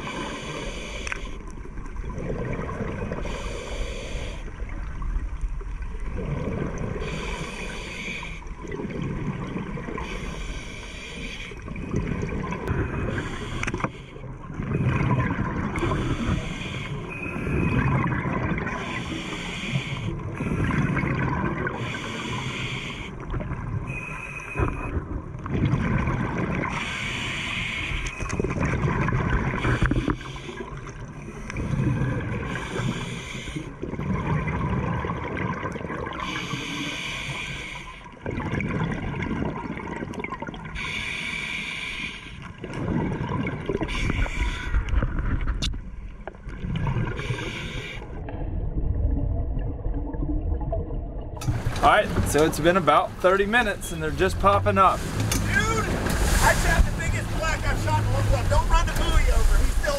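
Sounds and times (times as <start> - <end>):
hissing regulator breath in: 0.0 - 1.4, 3.2 - 4.5, 7.0 - 8.5, 10.0 - 11.6, 12.9 - 14.2, 15.8 - 17.5, 18.8 - 20.7, 21.8 - 23.2, 26.7 - 28.3, 32.5 - 33.7, 36.2 - 38.0, 40.8 - 42.5, 47.2 - 48.1.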